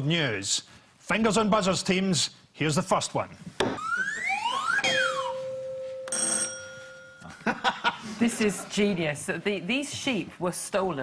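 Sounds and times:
bell ringing: 4.7 - 7.5.

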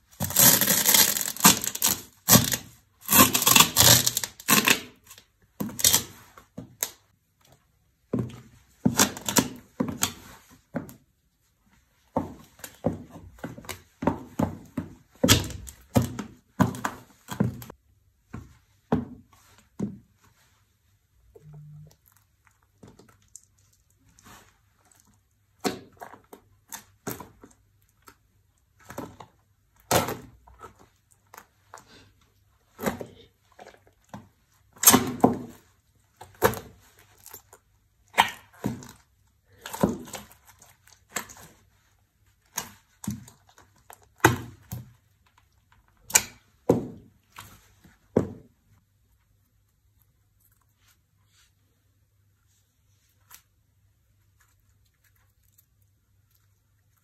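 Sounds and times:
sharp crushing sounds: 0.2 - 5.1.

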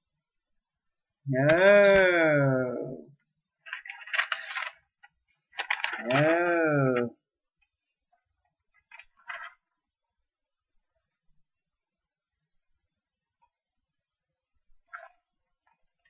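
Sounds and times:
man's wavering wordless vocal: 1.3 - 3.1, 6.0 - 7.2.

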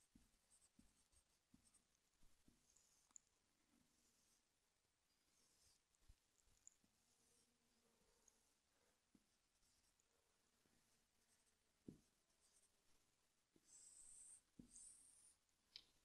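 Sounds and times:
marker pen on whiteboard: 0.0 - 4.5, 10.8 - 16.0.

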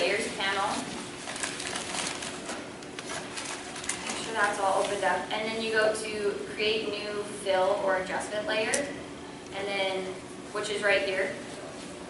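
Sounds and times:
woman speaking: 0.0 - 0.9, 4.2 - 9.0, 9.6 - 11.4.

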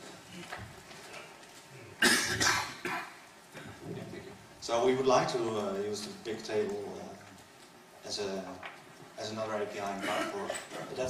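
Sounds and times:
person coughing: 2.0 - 3.8, 10.0 - 10.7.

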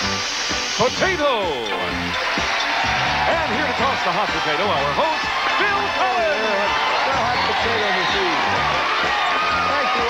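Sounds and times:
game show theme music: 0.1 - 10.0.

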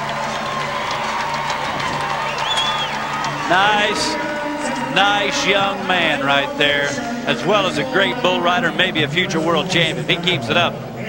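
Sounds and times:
crowd cheering and applauding: 0.0 - 8.5
music playing: 0.0 - 11.0.

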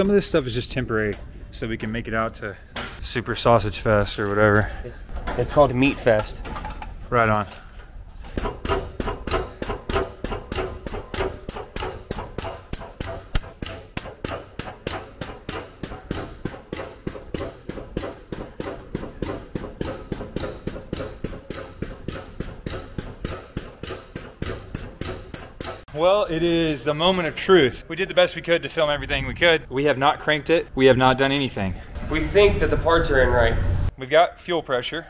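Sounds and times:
steady pump hum: 7.5 - 26.0
air pump knocking: 8.3 - 25.9.

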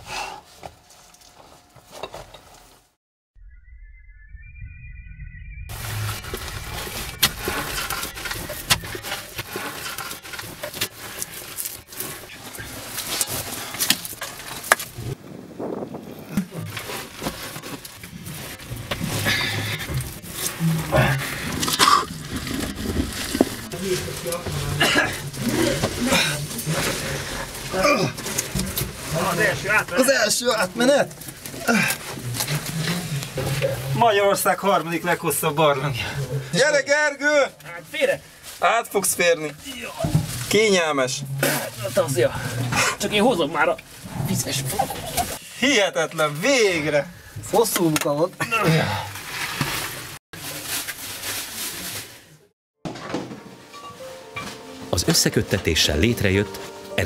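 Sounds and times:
soil and rock being dug by hand: 7.0 - 15.2, 16.2 - 33.9.

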